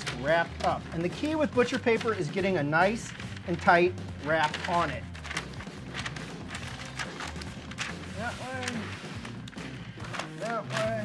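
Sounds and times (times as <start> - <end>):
paper crackling and rustling: 0.0 - 11.0.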